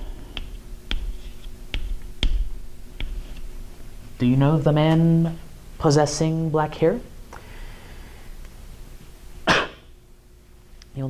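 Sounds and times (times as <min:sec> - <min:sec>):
chalk tapping on chalkboard: 0:00.3 - 0:03.4.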